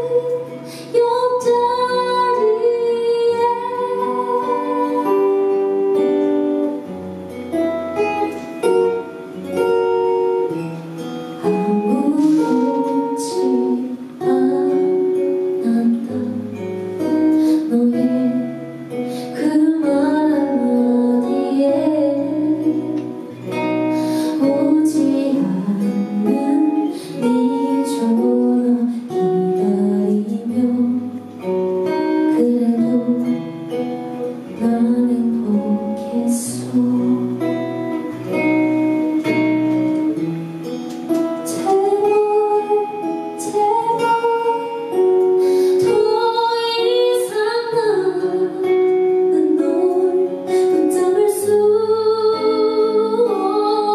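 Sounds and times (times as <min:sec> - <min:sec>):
woman singing into microphone: 0:00.0 - 0:06.9, 0:07.9 - 0:40.2, 0:41.1 - 0:53.9
acoustic guitar: 0:00.0 - 0:53.9.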